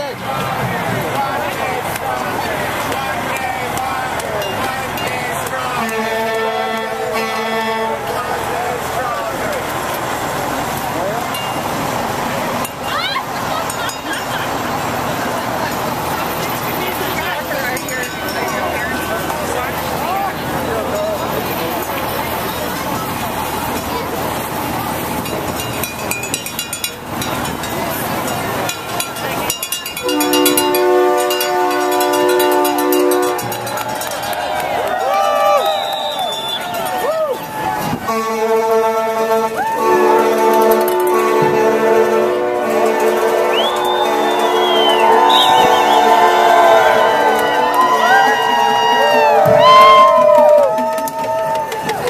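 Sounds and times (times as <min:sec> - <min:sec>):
marching crowd voices: 0:00.0 - 0:52.0
truck air horn blaring: 0:05.6 - 0:08.5, 0:30.0 - 0:33.8, 0:38.0 - 0:50.1.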